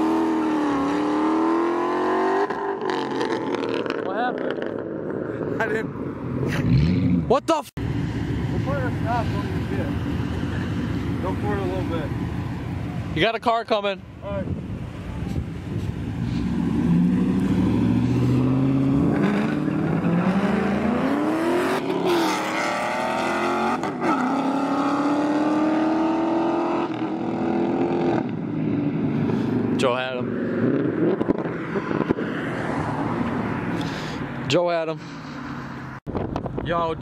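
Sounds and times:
cars accelerating hard: 0.0 - 5.5, 6.4 - 7.3, 16.0 - 34.2.

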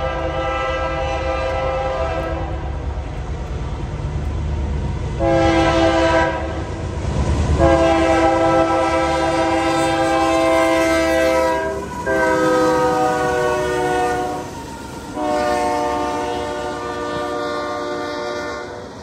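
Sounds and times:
locomotive air horn blasts: 0.0 - 2.8, 5.2 - 6.6, 7.6 - 14.5, 15.1 - 18.9
train rumble: 0.0 - 19.0.

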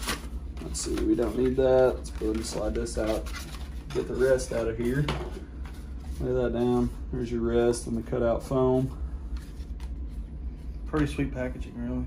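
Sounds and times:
packaging taps and rustles: 0.0 - 4.1
low steady hum: 0.0 - 12.0.

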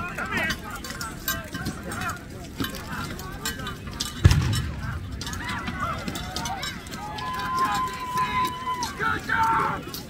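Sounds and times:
knocks and clatters: 0.4 - 7.8.

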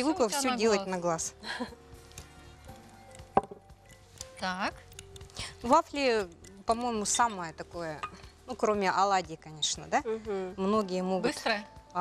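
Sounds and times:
faint background music: 0.0 - 12.0
spoon clinking glass bowl: 3.0 - 5.3.

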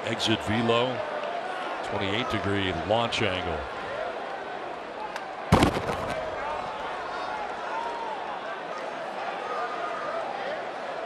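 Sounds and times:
baseball bat crack: 5.5 - 7.2.

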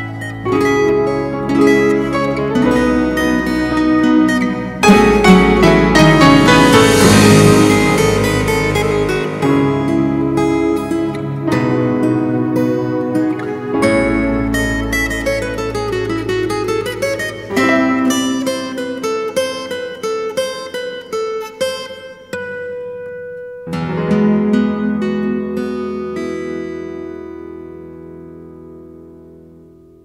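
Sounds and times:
acoustic guitar plucked notes: 0.0 - 30.0
guitar chord ringing: 0.0 - 30.0.

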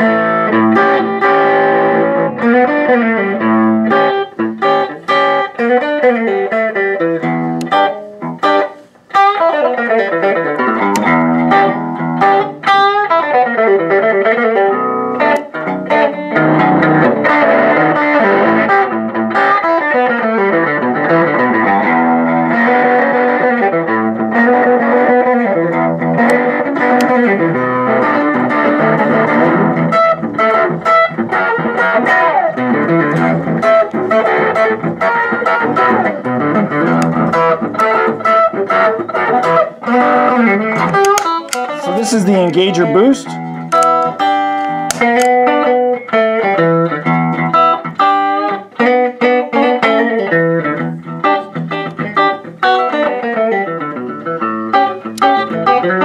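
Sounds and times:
fuzz electric guitar: 0.0 - 56.0.

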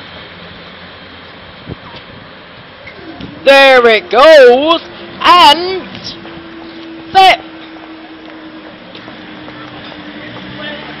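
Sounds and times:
pedestrians walking and talking: 0.0 - 11.0.

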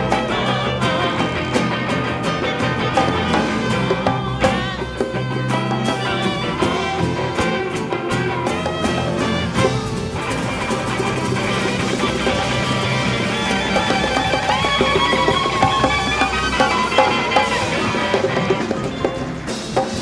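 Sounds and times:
drum kit: 0.0 - 20.0
electric guitars: 0.0 - 20.0
violins: 0.0 - 20.0.

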